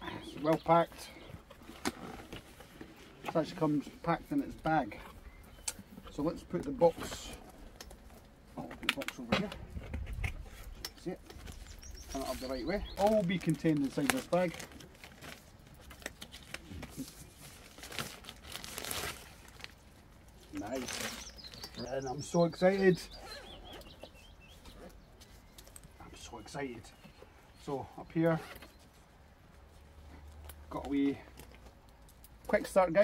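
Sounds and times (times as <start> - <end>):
distant bird chirps: 4.6 - 6.4, 10.4 - 13.5, 20.5 - 29.0
plastic wrap rustling: 7.8 - 22.1.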